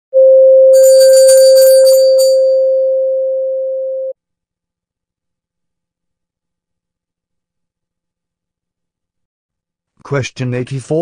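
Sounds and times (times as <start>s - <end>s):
high bell-like chimes: 0.8s - 2.8s.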